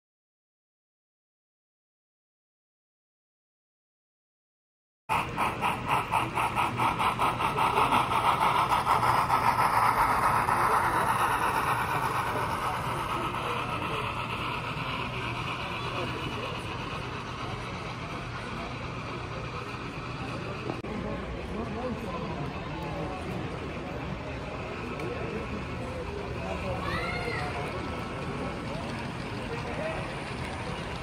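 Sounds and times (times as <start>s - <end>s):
model train wheels clicking: 5.1s - 31.0s.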